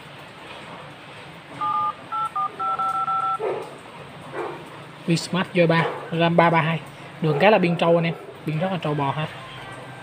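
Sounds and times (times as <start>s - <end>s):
phone keypad tones: 1.6s - 3.4s.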